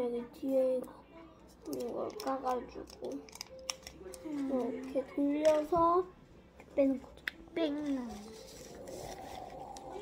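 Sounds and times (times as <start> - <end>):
child's voice: 0.0 - 1.0, 6.7 - 8.4
wrapper crackling and tearing: 1.6 - 4.2.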